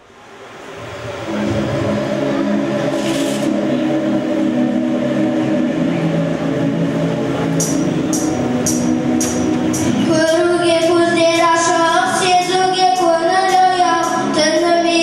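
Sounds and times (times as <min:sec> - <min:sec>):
instrumental backing track: 0:00.7 - 0:15.0
sharp high percussion beat: 0:00.8 - 0:11.5.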